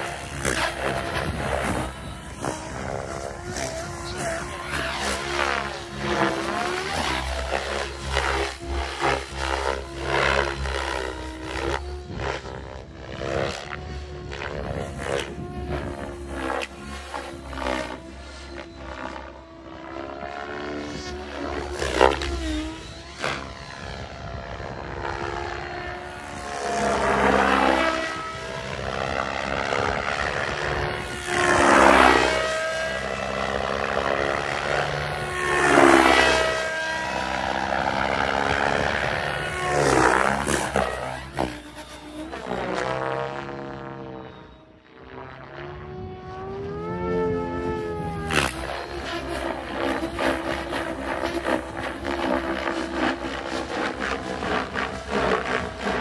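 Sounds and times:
rc helicopter rotor whine: 0.0s - 56.0s.

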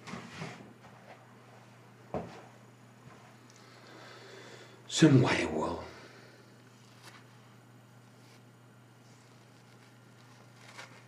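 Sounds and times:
faint low hum: 0.0s - 11.0s
rustling: 6.7s - 11.0s.

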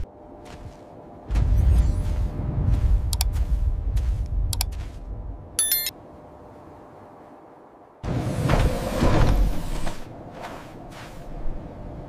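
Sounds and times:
deep rumble: 1.2s - 5.6s
high electronic chirp: 5.6s - 5.9s.

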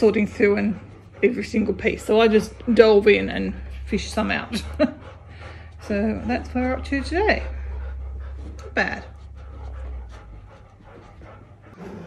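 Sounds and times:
dog panting softly: 0.0s - 12.0s.

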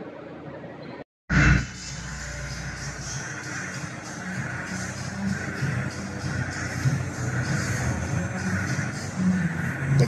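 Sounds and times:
background music: 1.3s - 10.0s.

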